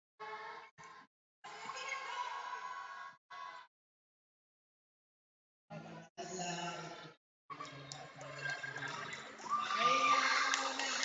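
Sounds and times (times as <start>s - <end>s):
children shouting and cheering: 9.4s - 11.0s.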